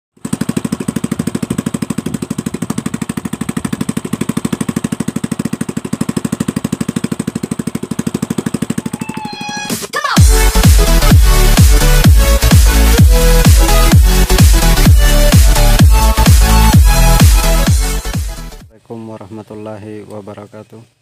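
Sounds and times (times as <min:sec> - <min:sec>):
motorcycle engine idling: 0:00.2 - 0:09.6
music: 0:08.8 - 0:18.7.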